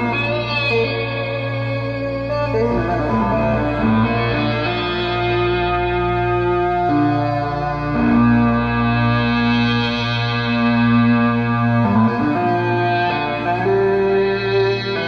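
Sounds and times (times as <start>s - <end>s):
distorted synth guitar notes: 0.0s - 15.0s.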